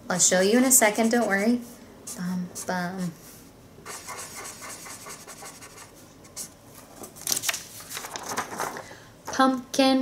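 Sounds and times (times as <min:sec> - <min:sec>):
marker pen scratching on paper: 0:00.4 - 0:02.7, 0:03.8 - 0:06.5
paper rustling: 0:06.8 - 0:08.9.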